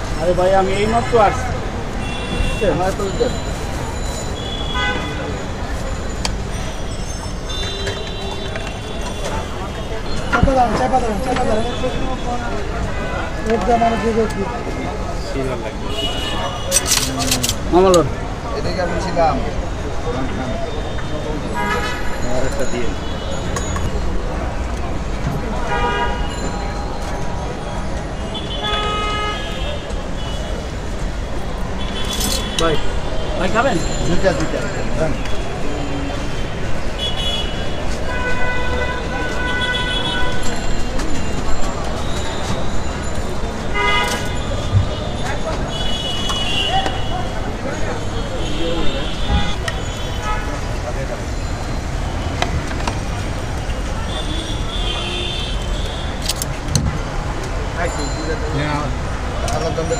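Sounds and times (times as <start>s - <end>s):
traffic engines rumbling: 0.0s - 59.9s
voices chattering: 0.0s - 59.9s
vehicle horns honking: 0.6s - 3.5s, 4.2s - 5.6s, 7.4s - 10.5s, 15.7s - 17.6s, 20.8s - 23.6s, 25.6s - 26.5s, 28.2s - 30.8s, 31.7s - 34.0s, 34.6s - 40.7s, 43.6s - 50.8s, 53.0s - 56.3s
sharp metallic clinks: 32.0s - 32.7s.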